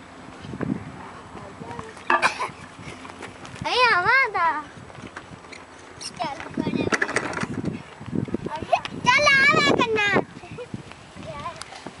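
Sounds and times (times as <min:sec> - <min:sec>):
child shouting: 0:08.6 - 0:10.2.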